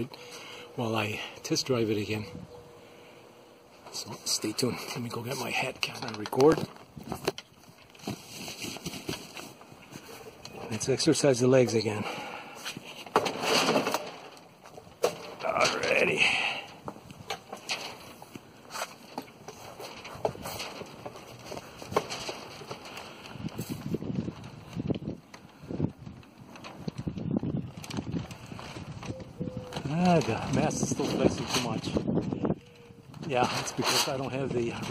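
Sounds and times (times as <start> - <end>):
fabric crackling in wind: 3.9 - 34.9.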